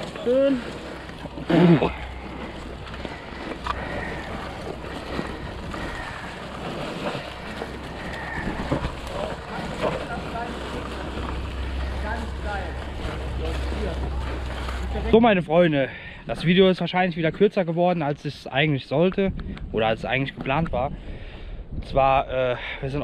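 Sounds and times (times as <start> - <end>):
tyres crunching dry leaves: 0.0 - 15.2
wind rumbling on camera: 0.0 - 15.4, 19.0 - 23.0.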